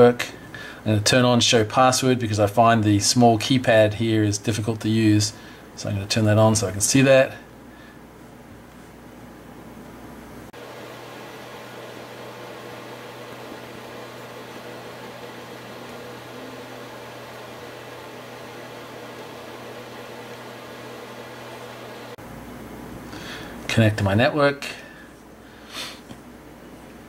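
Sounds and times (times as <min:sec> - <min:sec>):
mechanical hum with hiss: 0:00.0 - 0:27.0.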